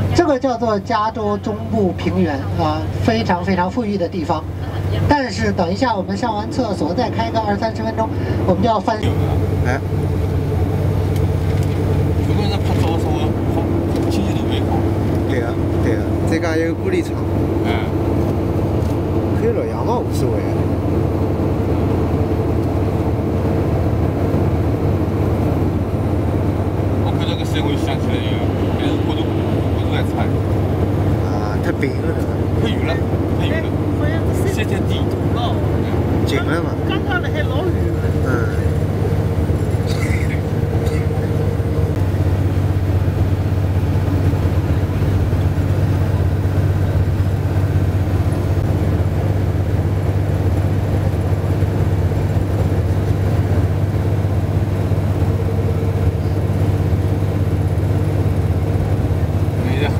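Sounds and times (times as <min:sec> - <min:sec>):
faint passenger voices: 0:00.0 - 0:20.8, 0:27.0 - 0:42.1, 0:59.5 - 0:59.9
coach engine and road noise: 0:00.0 - 0:59.9.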